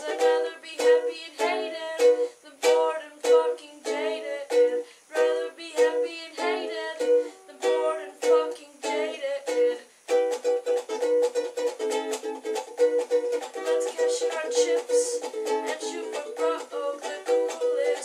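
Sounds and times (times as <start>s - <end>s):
ukulele strumming: 0.0s - 18.0s.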